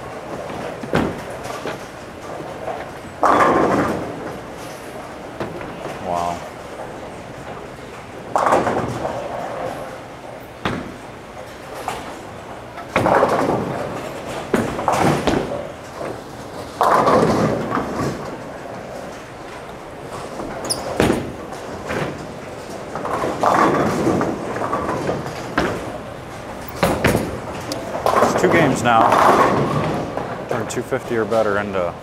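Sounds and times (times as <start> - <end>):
bowling pins crashing: 0.0 - 6.0, 6.7 - 30.7
bowling balls rolling: 0.0 - 32.0.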